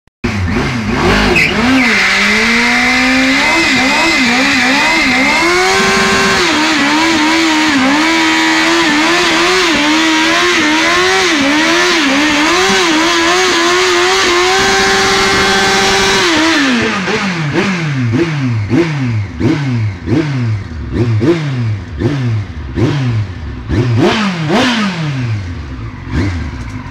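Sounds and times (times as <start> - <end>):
motorcycle engine at high revs: 0.2 - 26.9
tyre spinning and squealing: 1.2 - 2.5.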